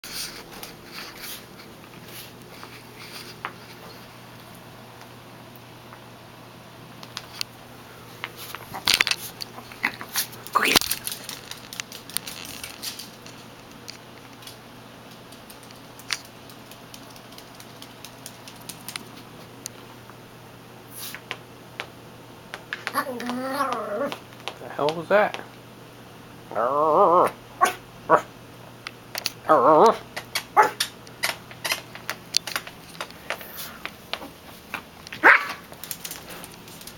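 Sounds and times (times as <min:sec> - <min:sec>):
small dog yipping: 0:27.6 - 0:28.2, 0:30.6 - 0:30.8.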